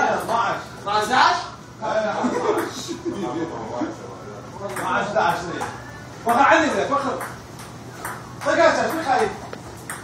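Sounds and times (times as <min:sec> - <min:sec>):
table tennis ball clicking: 0:06.3 - 0:10.0.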